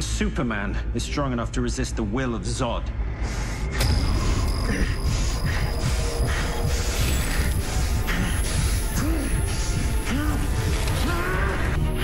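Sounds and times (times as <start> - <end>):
dramatic music score: 0.0 - 12.0
heavy low rumble: 1.2 - 10.8.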